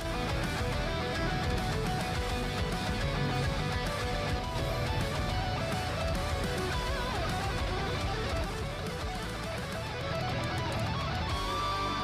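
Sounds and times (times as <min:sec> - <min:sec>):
guitar music: 0:00.0 - 0:12.0.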